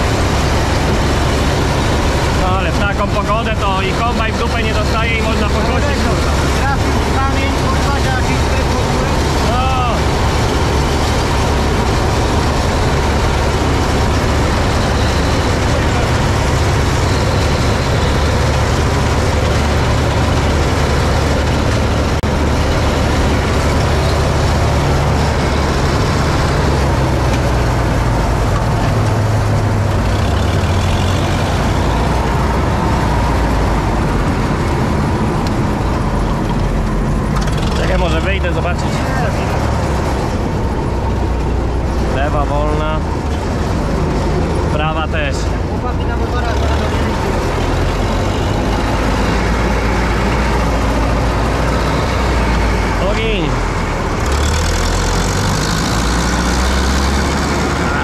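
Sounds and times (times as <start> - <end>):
clatter of threshing works: 0.0 - 58.0
combine harvester engine drone: 0.0 - 58.0.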